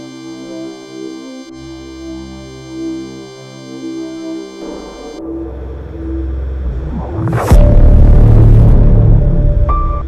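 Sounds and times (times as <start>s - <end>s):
low rumbling soundtrack drone: 3.9s - 10.0s.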